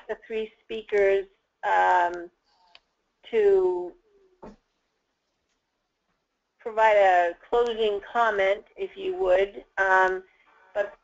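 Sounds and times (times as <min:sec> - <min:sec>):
woman's voice: 0:00.0 - 0:02.4, 0:03.3 - 0:04.0, 0:06.7 - 0:11.0.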